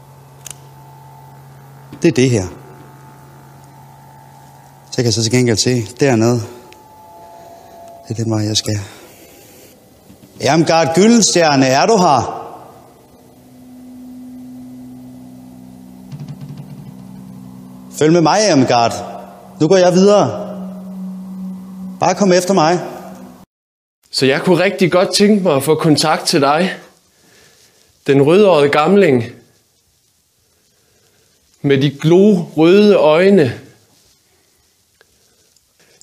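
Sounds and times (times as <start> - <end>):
eerie low drone: 0.0 - 23.5
faint high steady tone: 0.0 - 23.5
steady low hum: 0.0 - 23.5
background hiss: 0.0 - 36.0.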